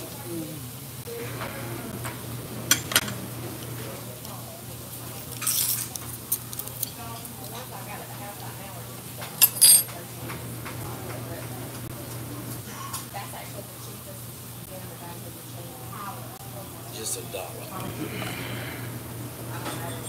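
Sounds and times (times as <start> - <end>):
steady low hum: 0.3 - 5.0, 17.6 - 19.9
cutlery clinking against dishes: 2.7 - 3.2, 9.2 - 10.0, 19.6 - 20.0.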